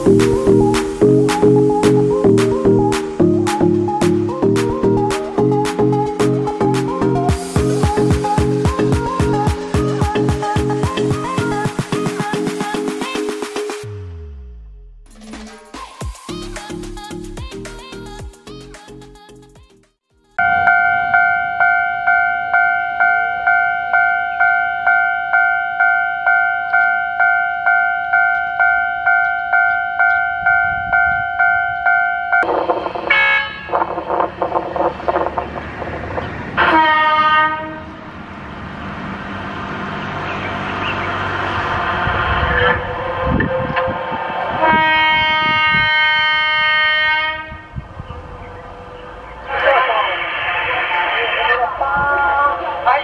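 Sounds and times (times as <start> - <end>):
rumble of train passing: 0.0 - 11.6, 20.4 - 53.0
level-crossing warning bell ringing: 20.4 - 32.5
train horn blasts: 32.3 - 34.3, 36.6 - 38.0, 42.6 - 47.8.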